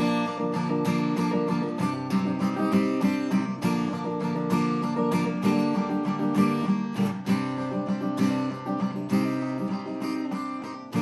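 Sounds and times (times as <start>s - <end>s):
acoustic guitar fingerpicking: 0.0s - 11.0s.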